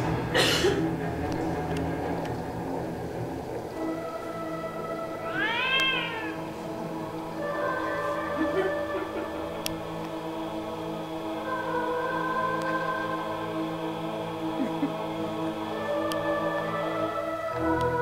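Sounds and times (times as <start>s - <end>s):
horror film music: 0.0s - 18.0s
wailing cry: 5.2s - 6.5s.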